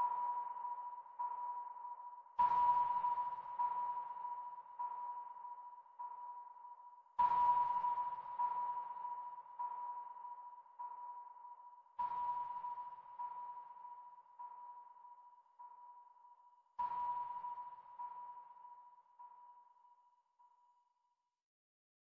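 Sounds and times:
sonar-like electronic ping with echoes: 0.0s - 20.8s.

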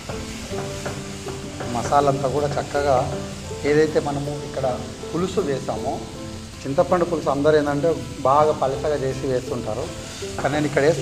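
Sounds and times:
background music: 0.0s - 11.0s
chicken sizzling in a frying pan: 0.0s - 11.0s.

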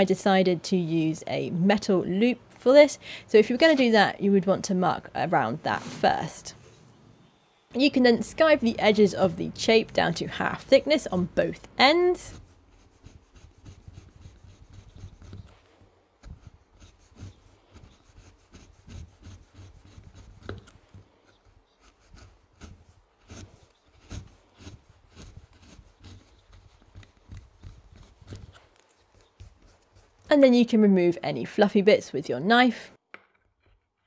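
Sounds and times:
knife scraping leather: 8.4s - 30.3s.

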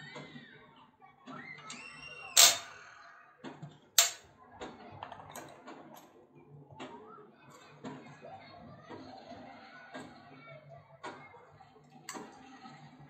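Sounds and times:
metal hardware clicking: 2.4s - 2.7s, 4.0s - 4.2s.

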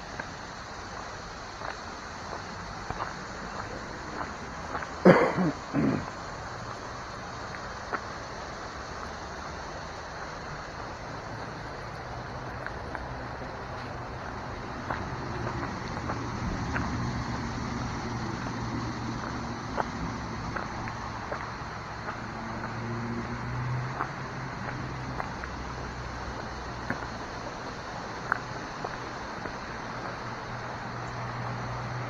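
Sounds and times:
footsteps on a dirt path: 0.0s - 32.0s
low rumble and hiss: 0.0s - 32.0s.

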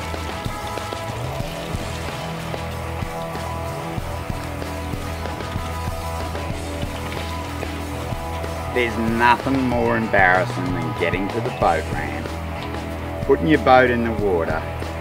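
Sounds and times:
background music with low bass: 0.0s - 15.0s.

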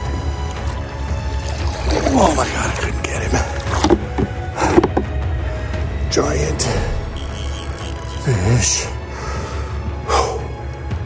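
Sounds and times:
background music: 0.0s - 11.0s
fish splashing at water surface: 0.4s - 5.1s.

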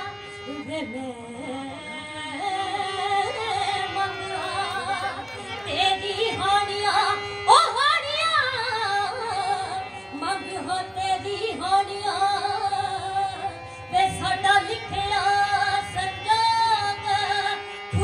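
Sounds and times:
harmonium accompaniment: 0.0s - 18.0s
woman singing folk song: 0.0s - 18.0s.

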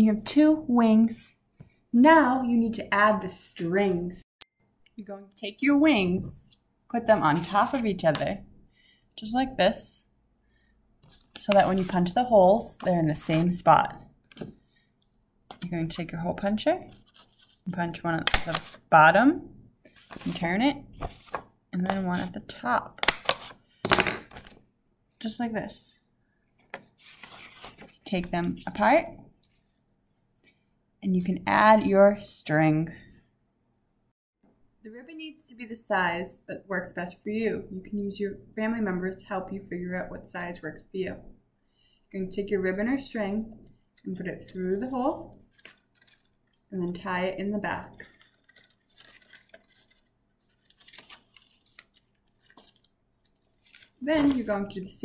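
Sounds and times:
paper rustling: 11.0s - 12.2s, 16.9s - 17.7s, 19.9s - 21.5s, 26.6s - 30.3s, 45.4s - 46.7s, 47.9s - 54.7s.

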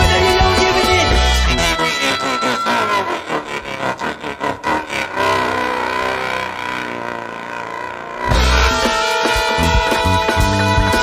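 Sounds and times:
free jazz saxophones and guitar: 0.0s - 4.0s, 8.2s - 11.0s.

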